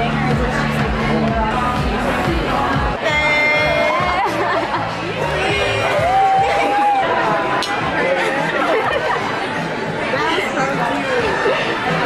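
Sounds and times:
chatter of people talking: 0.0 - 12.0.

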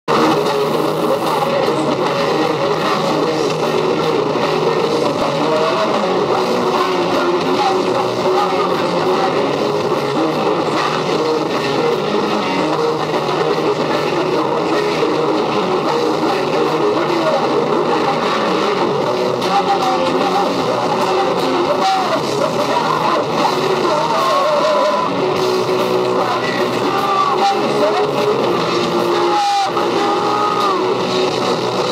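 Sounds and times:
bass guitar: 0.0 - 31.9
distorted electric guitars: 0.0 - 31.9
drums: 0.0 - 31.9.

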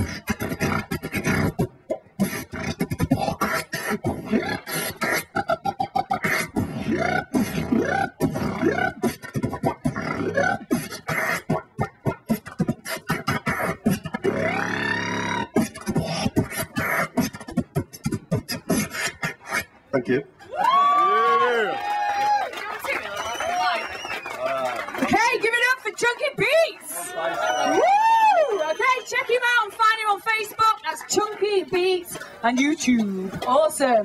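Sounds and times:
wavering pitched vocal tone: 0.0 - 19.9
beatboxing into a microphone: 0.0 - 20.1.

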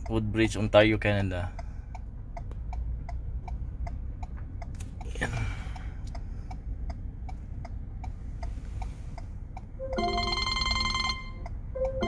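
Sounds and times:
phone ringtone: 9.8 - 12.0.

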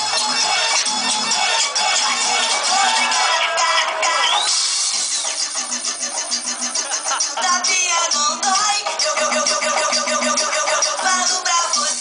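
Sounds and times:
fast pulsing club music: 0.0 - 12.0.

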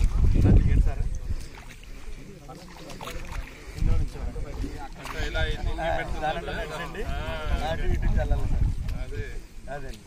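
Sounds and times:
bare feet splashing through water: 0.0 - 6.9
people talking: 0.3 - 10.0.

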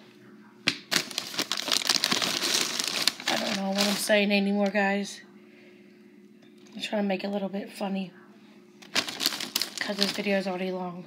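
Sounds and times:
plastic bag crinkling: 0.9 - 4.4, 8.8 - 10.7.

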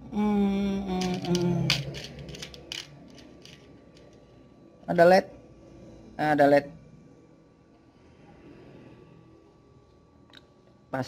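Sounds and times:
electronic parts rattling in plastic tub: 1.0 - 3.7.

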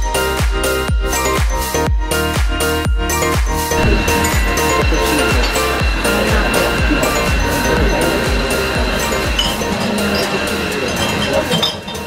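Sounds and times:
crockery and glasses clinking: 3.7 - 12.0
indistinct voices: 3.7 - 12.0.

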